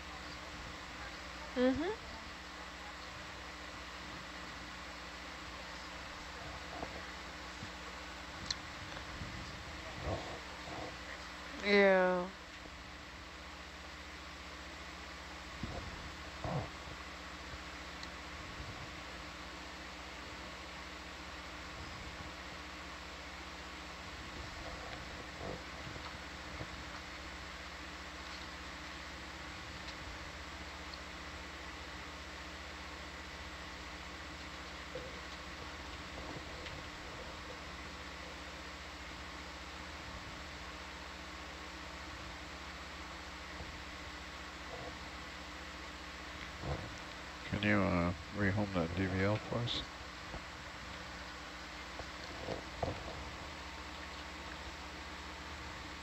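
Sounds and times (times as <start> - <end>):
electrical hum and hiss: 0.0 - 56.0.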